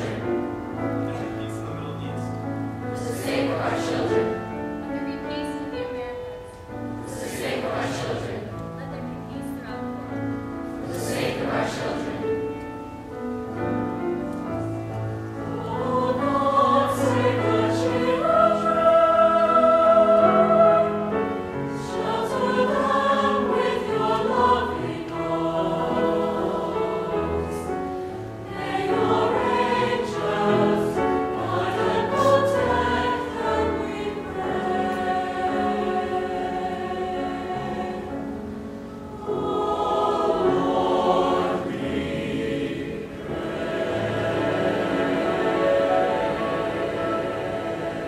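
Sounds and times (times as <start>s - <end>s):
choir singing in parts: 0.0s - 2.0s, 2.7s - 4.8s, 6.6s - 8.6s, 10.8s - 48.0s.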